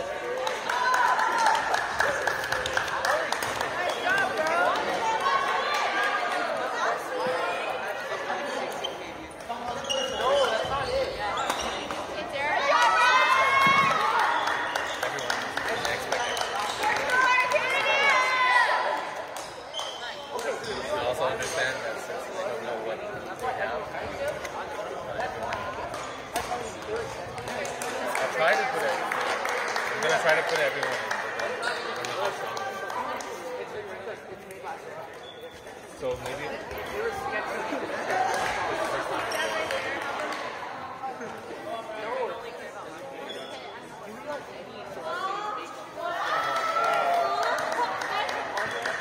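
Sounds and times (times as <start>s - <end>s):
players' voices: 0.0s - 49.0s
sneakers squeaking on hardwood: 8.8s - 12.1s.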